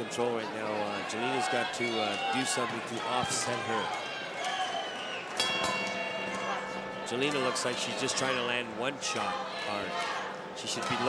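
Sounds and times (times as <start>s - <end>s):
boxing ring bell ringing: 5.4s - 8.6s.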